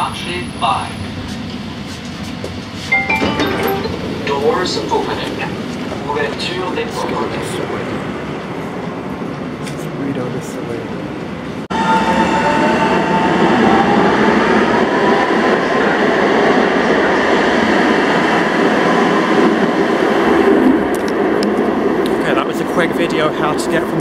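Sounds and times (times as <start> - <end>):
train rumble: 12.8 - 24.0.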